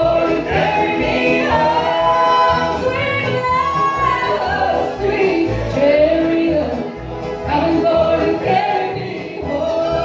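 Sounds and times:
voices singing in close harmony: 0:00.0 - 0:05.6, 0:07.6 - 0:10.0.

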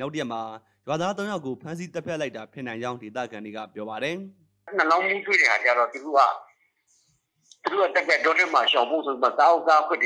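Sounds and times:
person talking on phone call: 0:04.7 - 0:06.5, 0:07.5 - 0:10.0.

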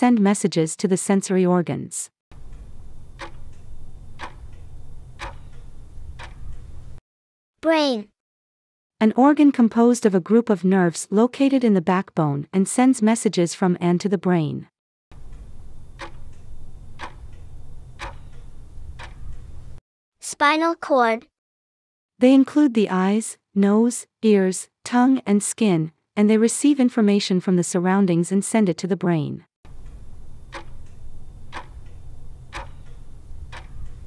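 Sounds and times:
clock ticking: 0:02.4 - 0:07.0, 0:15.2 - 0:19.7, 0:29.8 - 0:34.0
low steady hum: 0:02.4 - 0:07.0, 0:15.2 - 0:19.8, 0:29.7 - 0:34.0.

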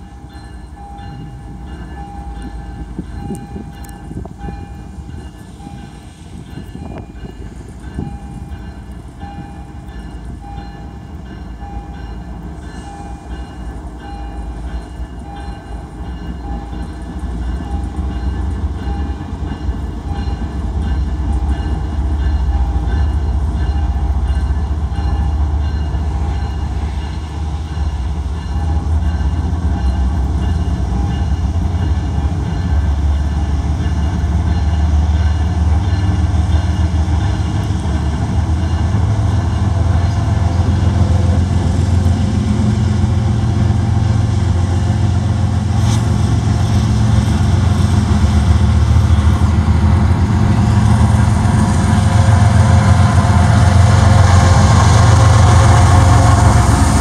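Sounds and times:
locomotive bell ringing: 0:00.0 - 0:45.7
diesel locomotive engine rumble: 0:00.0 - 0:57.0.

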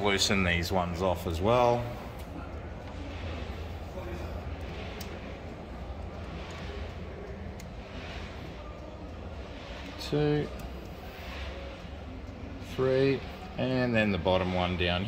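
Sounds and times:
low background hum: 0:00.0 - 0:15.0.

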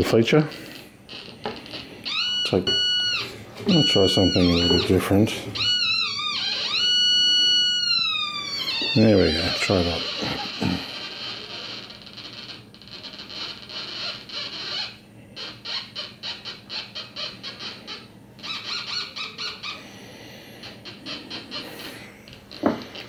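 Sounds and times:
metal detector high-pitched tone: 0:02.1 - 0:08.2.

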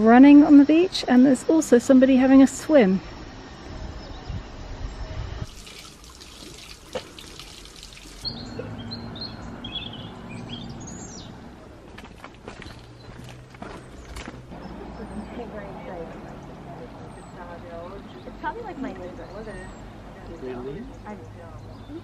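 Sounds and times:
small birds chirping: 0:00.2 - 0:22.0.

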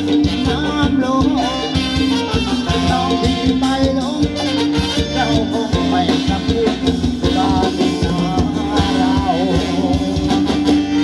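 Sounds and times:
live band dance music: 0:00.0 - 0:11.0
steady drum beat: 0:00.0 - 0:11.0.

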